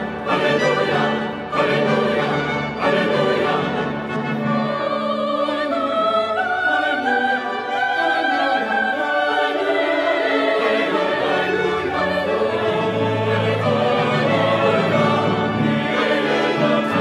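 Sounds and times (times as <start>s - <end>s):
choir singing a hymn: 0.0s - 17.0s
instrumental accompaniment: 0.0s - 17.0s.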